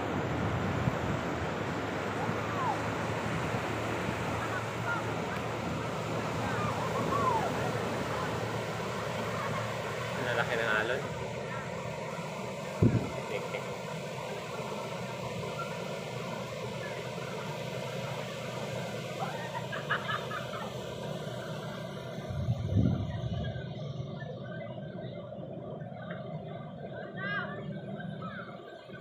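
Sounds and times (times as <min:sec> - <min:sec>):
waves washing up a beach: 0:00.0 - 0:23.6
low thumps: 0:22.3 - 0:23.6.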